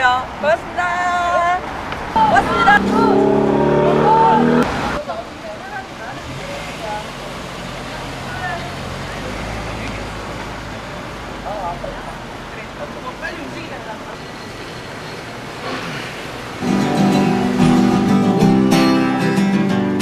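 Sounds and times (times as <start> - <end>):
road noise: 0.0 - 20.0
people calling out: 0.8 - 5.0
low engine hum: 2.0 - 12.4
steady droning tone: 2.2 - 4.7.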